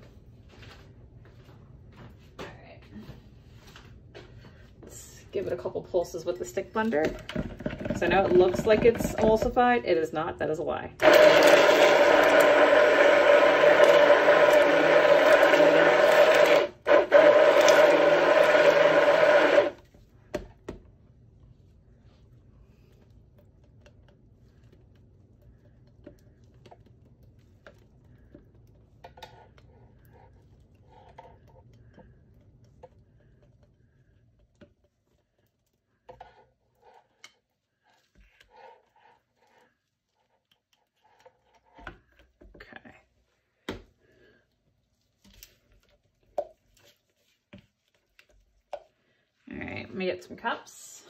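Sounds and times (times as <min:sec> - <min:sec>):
stick blender running: 0:11.0 - 0:19.8.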